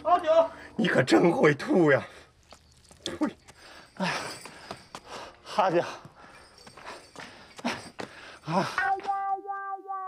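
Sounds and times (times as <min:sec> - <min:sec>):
footsteps: 0:02.3 - 0:09.7.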